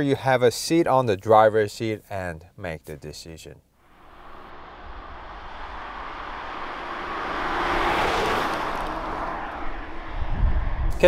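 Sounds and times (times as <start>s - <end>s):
car driving past: 3.9s - 11.0s.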